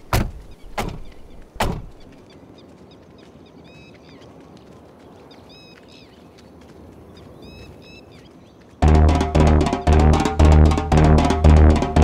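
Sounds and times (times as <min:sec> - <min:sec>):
car doors slamming: 0:00.1 - 0:02.0.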